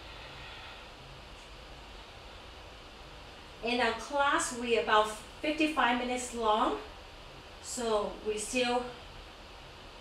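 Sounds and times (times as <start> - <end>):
faint hum: 0.0 - 10.0
low background hiss: 0.0 - 10.0.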